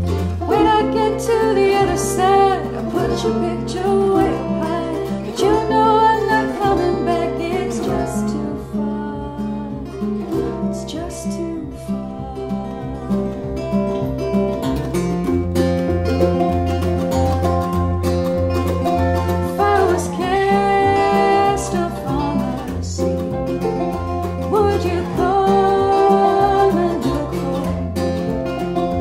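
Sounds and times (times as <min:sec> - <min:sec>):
bluegrass string band playing: 0:00.0 - 0:29.0
low bass notes: 0:00.0 - 0:29.0
woman singing: 0:00.4 - 0:14.0, 0:18.6 - 0:23.2, 0:24.4 - 0:28.1.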